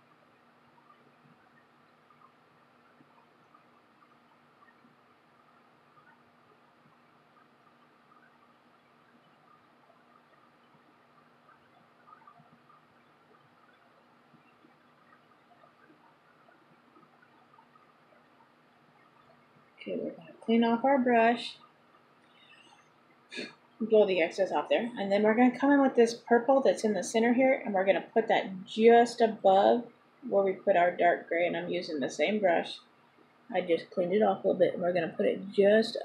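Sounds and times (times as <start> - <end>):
air conditioner hum: 0.0 - 36.0
faint soft ticks: 0.1 - 20.0.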